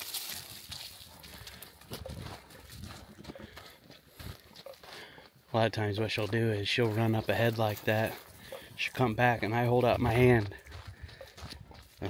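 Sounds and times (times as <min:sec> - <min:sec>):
dog running through grass: 0:00.0 - 0:04.8
dog breathing and snuffling: 0:00.4 - 0:05.3, 0:08.1 - 0:08.8.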